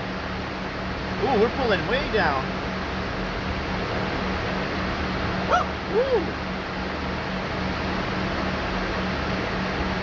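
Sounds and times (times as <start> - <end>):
short high rising and falling cry: 5.4 - 6.4.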